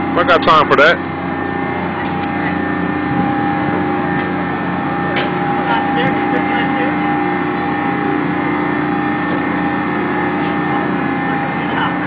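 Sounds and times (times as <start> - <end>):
carnival ride machinery drone: 0.0 - 12.0.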